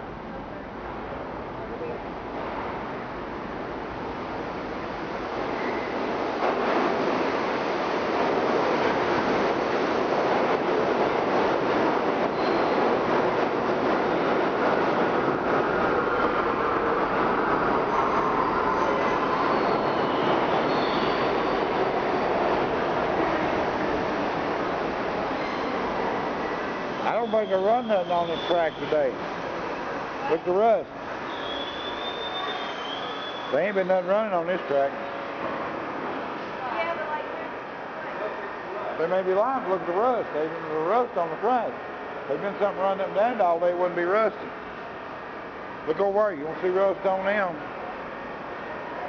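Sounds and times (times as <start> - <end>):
subway train running: 0.0 - 49.0
wheels squealing: 5.4 - 6.1, 12.2 - 13.1, 17.6 - 21.9, 31.2 - 34.0.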